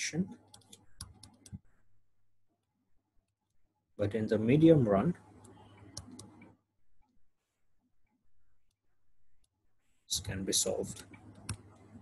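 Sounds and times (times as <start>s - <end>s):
stylus tapping tablet screen: 0.5s - 1.8s, 5.4s - 7.2s, 10.9s - 12.0s.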